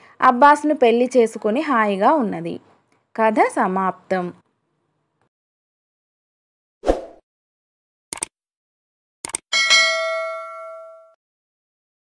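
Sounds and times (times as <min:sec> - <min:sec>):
quick clicks: 0:08.1 - 0:08.3, 0:09.2 - 0:09.4
bright bell ding: 0:09.6 - 0:11.2.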